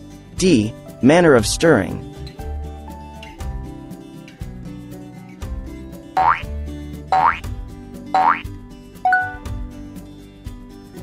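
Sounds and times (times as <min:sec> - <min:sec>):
background music: 0:00.0 - 0:11.0
rising-pitch sound effects: 0:09.1 - 0:09.4.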